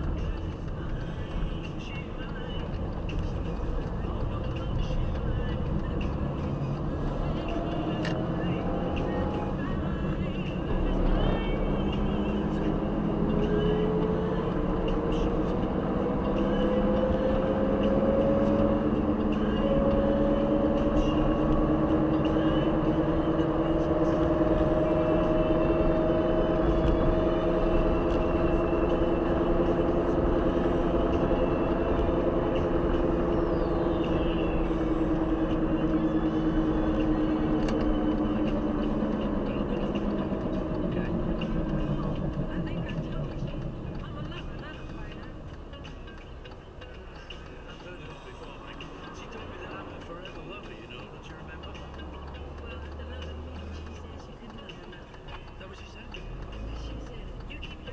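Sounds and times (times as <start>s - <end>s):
car engine and road noise: 0.0s - 57.9s.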